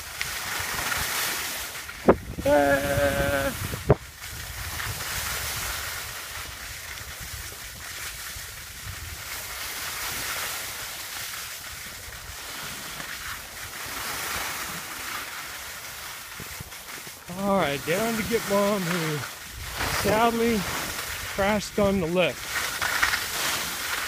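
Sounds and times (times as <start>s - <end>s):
skis hissing over snow: 0.0s - 24.0s
wind buffeting microphone: 2.0s - 7.8s, 19.4s - 22.5s.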